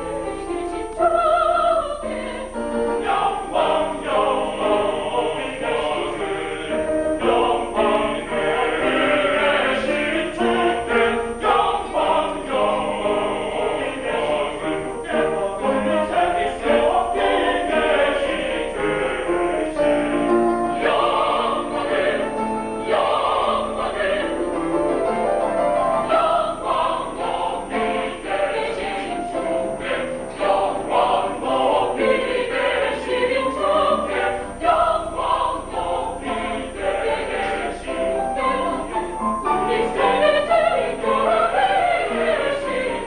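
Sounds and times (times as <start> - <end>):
mixed choir singing: 0.0 - 43.0.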